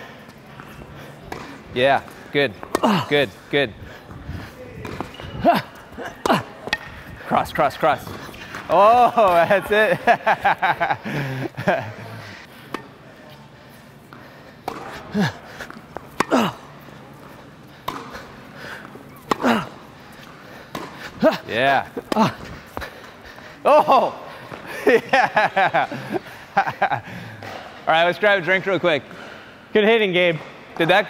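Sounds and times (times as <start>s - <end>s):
racquets striking tennis ball: 0.2s - 10.9s, 14.1s - 26.2s.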